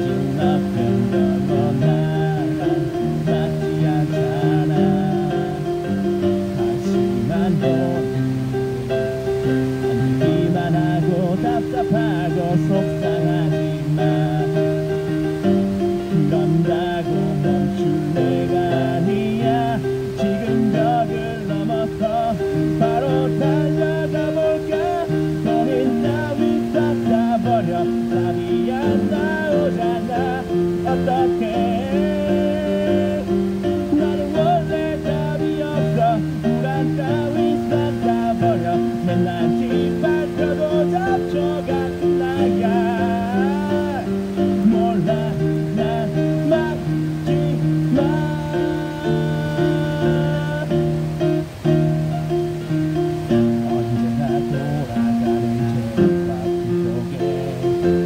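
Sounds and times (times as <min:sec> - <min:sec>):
man singing through microphone: 0:00.0 - 0:58.0.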